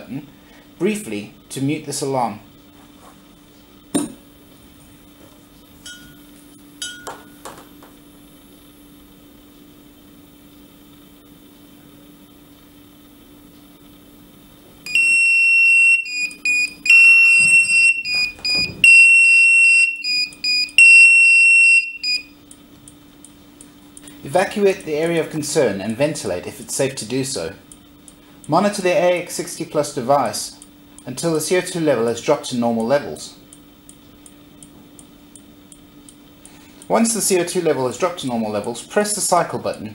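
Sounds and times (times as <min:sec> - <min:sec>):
low steady hum: 0:00.0 - 0:39.9
high-pitched alarm beeps: 0:14.9 - 0:22.4.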